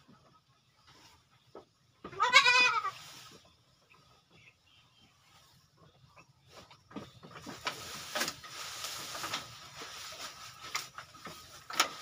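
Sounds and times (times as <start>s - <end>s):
goat bleating: 2.1s - 3.0s.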